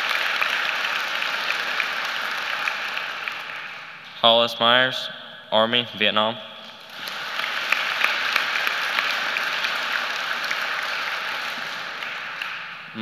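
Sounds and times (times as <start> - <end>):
audience applauding: 0.0 - 4.0, 6.8 - 13.0.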